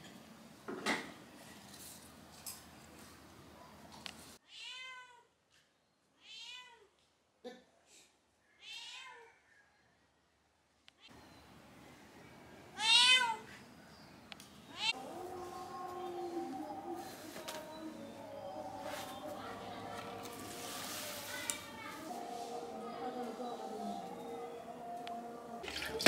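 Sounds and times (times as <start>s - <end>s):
cat meowing: 8.6s - 9.3s, 12.8s - 13.4s.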